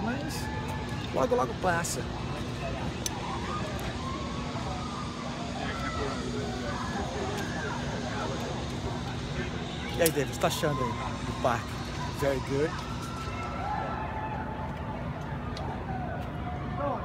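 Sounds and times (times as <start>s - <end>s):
low hum and rumble: 0.0s - 17.0s
people chattering: 0.0s - 17.0s.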